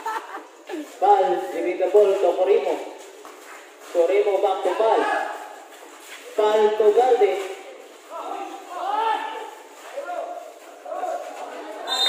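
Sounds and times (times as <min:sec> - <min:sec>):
man speaking: 0:00.8 - 0:03.0, 0:03.9 - 0:05.5, 0:06.3 - 0:11.8.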